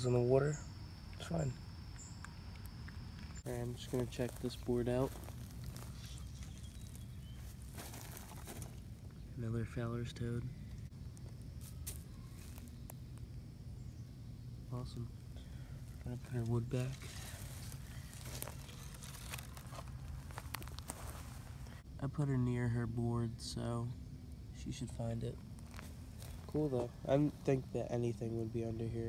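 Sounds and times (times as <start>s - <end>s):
rustling of dry grass: 3.4s - 9.2s, 11.1s - 13.3s, 15.5s - 21.8s, 25.4s - 27.6s.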